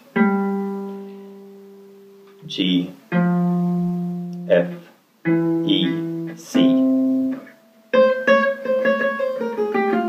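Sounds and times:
acoustic guitar note ringing: 0.0s - 10.0s.

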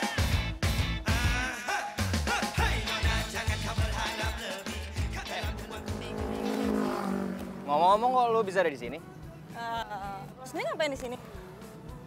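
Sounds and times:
background music with a beat: 0.0s - 6.8s
motorcycle engine passing: 5.0s - 10.4s.

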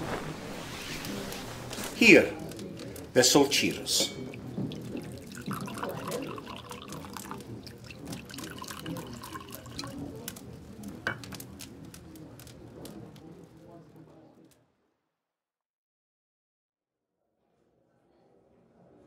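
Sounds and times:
water trickling and dripping: 2.0s - 11.4s.

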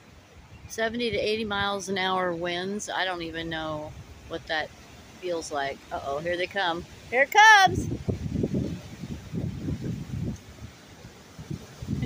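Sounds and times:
gusty wind buffeting microphone: 0.0s - 12.0s.

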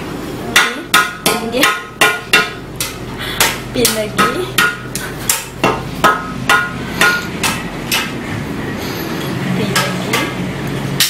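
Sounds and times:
sharp ringing knocks: 0.6s - 8.2s.

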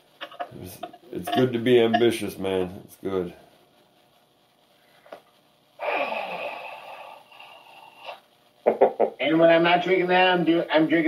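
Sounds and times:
person sighing: 5.8s - 7.8s.

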